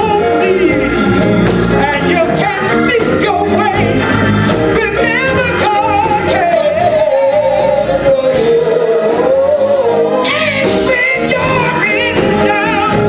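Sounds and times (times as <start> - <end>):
church band accompaniment: 0.0 - 13.0
woman singing gospel: 0.0 - 13.0.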